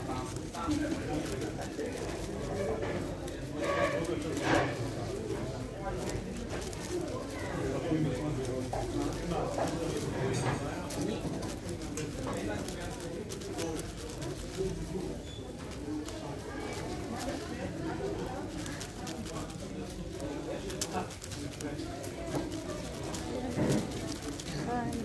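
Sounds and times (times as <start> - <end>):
background voices talking: 0.0 - 25.0
speed cube clicking: 16.1 - 25.0.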